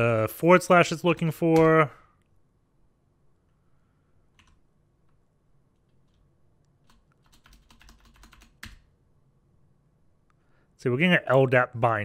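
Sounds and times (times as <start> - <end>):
keyboard typing: 4.3 - 4.6, 6.8 - 8.9.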